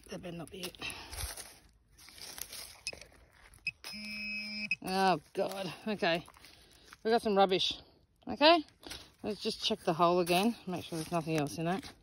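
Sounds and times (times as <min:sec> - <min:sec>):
soil and dry grass scraping: 0:00.0 - 0:12.0
electronic pinpointer tone: 0:03.6 - 0:04.9.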